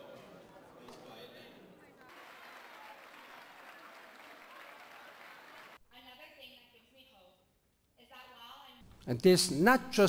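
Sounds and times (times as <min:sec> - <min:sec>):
audience applauding: 0:02.0 - 0:05.8.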